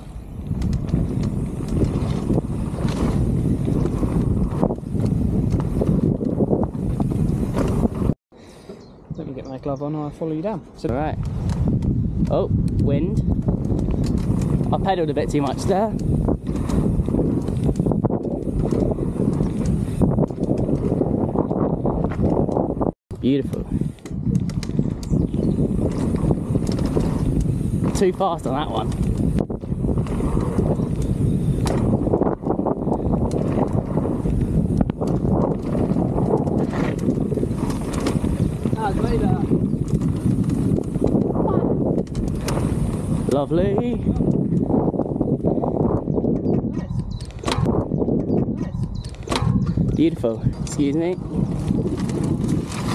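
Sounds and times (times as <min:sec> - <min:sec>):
bike rattling and knocking: 0:00.0 - 0:08.2, 0:10.9 - 0:52.9
bike tyres on dirt trail: 0:00.0 - 0:52.9
wind buffeting microphone: 0:00.0 - 0:52.9.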